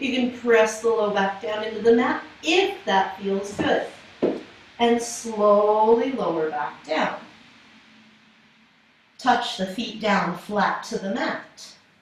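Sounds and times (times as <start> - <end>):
woman speaking: 0.0 - 4.0, 4.8 - 7.2, 9.2 - 11.7
faint steady hum: 0.0 - 12.0.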